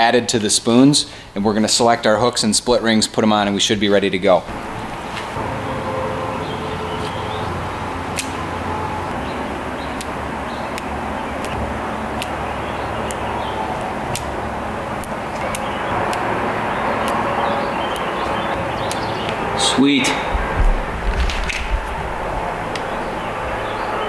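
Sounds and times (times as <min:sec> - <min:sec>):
low hum and hiss: 0:00.0 - 0:24.0.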